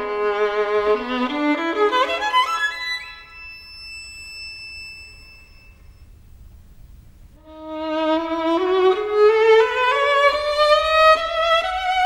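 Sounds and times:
high violin note: 0.0 - 6.1, 7.4 - 12.0
faint low hum: 0.0 - 12.0.

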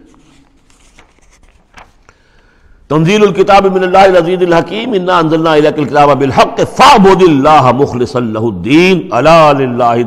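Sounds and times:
paper pages rustling: 0.0 - 2.5
man reciting: 2.9 - 10.0.

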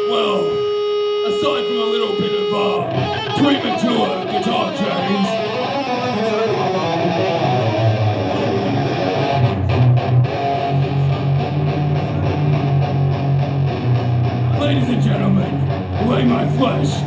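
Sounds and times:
bass guitar low line: 0.0 - 17.0
electric guitar strumming chords: 0.0 - 17.0.

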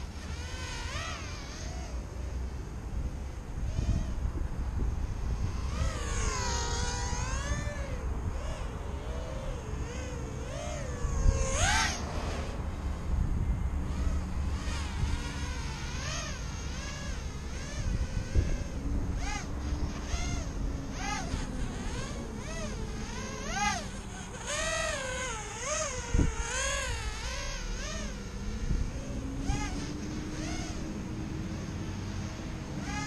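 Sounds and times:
quadcopter motors whining: 0.0 - 33.0.

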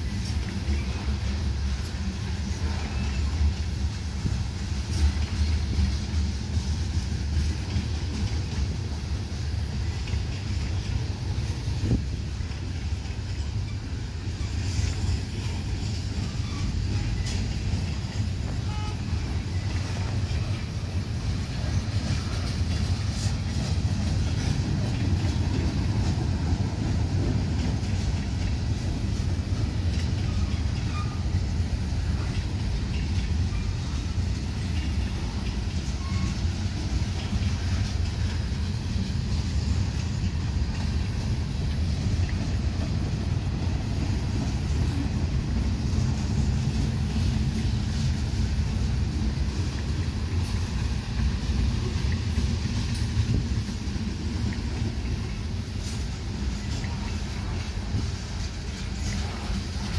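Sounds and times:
train wheels rumbling on rail: 0.0 - 59.9.

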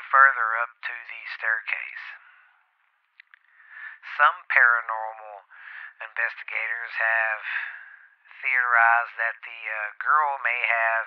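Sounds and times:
man speaking: 0.0 - 2.3, 3.8 - 11.0
faint breath: 2.2 - 2.8, 3.4 - 4.1, 5.5 - 6.0, 7.4 - 8.4
faint clicks: 2.9 - 3.6.

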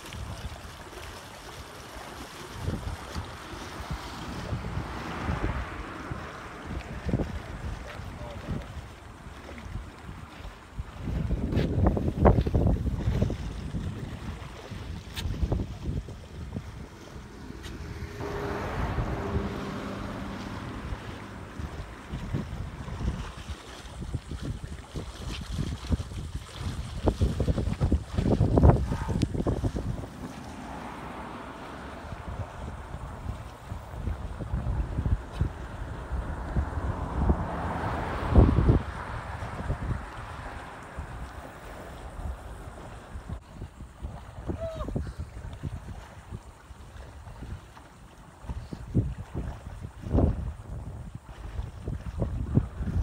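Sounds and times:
wind buffeting microphone: 0.0 - 53.0.

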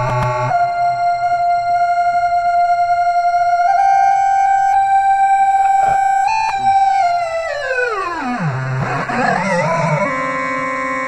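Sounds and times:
held electronic note: 0.0 - 11.0.

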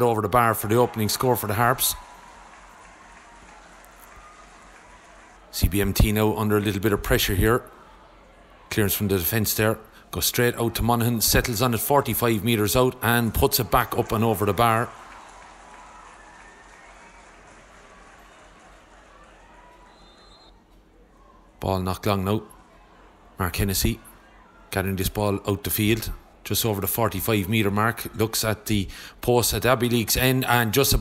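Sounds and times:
small crowd applauding: 0.0 - 9.0, 11.4 - 21.4.

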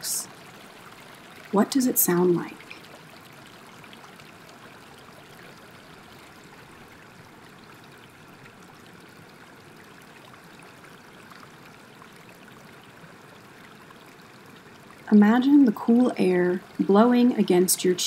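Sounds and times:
water rushing: 0.0 - 18.0.

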